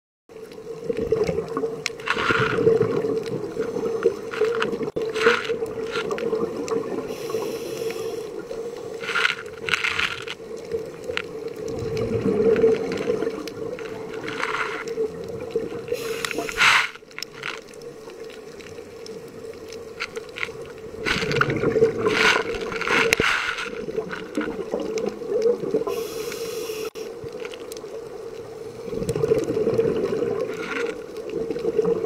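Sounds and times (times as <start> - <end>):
exhaled bubbles bursting: 0.6 - 7.4, 9.3 - 26.0, 27.8 - 32.0
scuba regulator breathing: 7.0 - 10.2, 15.9 - 17.6, 25.8 - 27.2.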